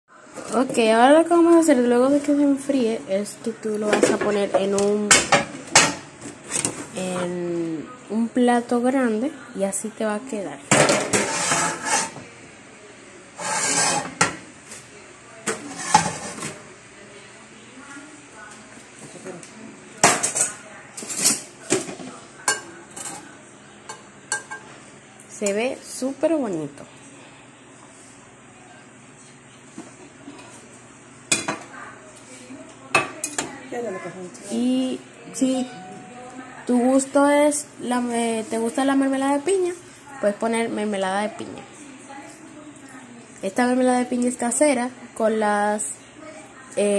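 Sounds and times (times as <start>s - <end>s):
ceramic plate scraping: 10.9s - 12.2s, 13.4s - 14.4s, 15.5s - 16.6s.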